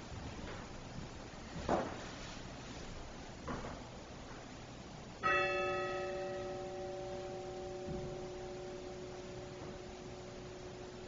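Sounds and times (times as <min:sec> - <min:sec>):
bell ringing: 0:05.2 - 0:11.0.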